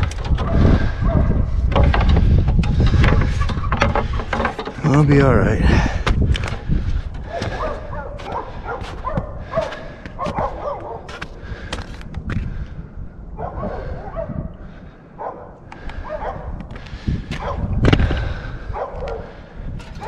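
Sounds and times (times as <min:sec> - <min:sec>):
sharp knocks and handling noise: 0:00.0 - 0:05.2.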